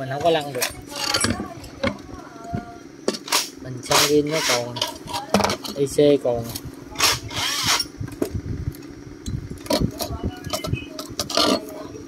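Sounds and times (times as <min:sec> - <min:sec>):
small engine running: 0:00.0 - 0:12.0.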